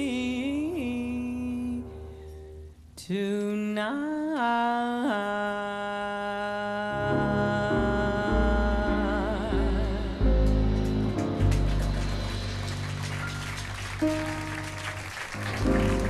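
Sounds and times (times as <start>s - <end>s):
woman's wordless vocal: 3.0s - 10.9s
bass and piano notes: 6.9s - 16.0s.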